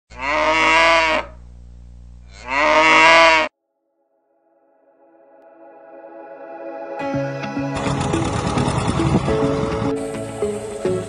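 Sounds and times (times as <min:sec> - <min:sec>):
cow mooing: 0:00.1 - 0:01.4, 0:02.3 - 0:03.5.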